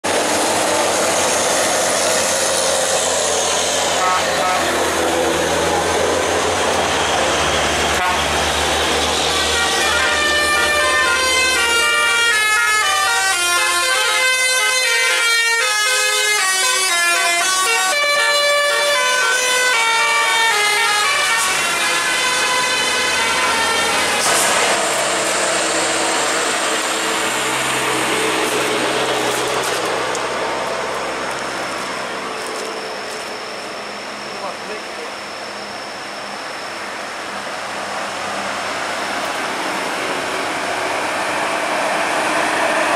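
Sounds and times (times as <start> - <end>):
heavy truck engines labouring: 0.0 - 42.9
road noise: 0.0 - 42.9
bus multi-tone horn melody: 3.6 - 5.5, 7.7 - 29.2.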